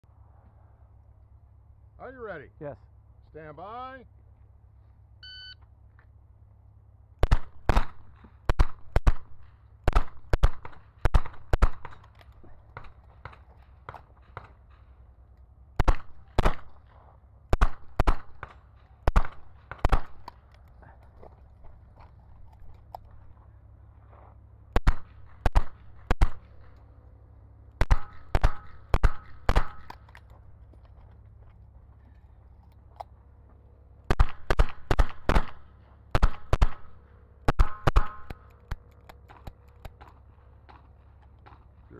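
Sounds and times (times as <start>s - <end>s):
shot timer beep: 5.2s - 5.6s.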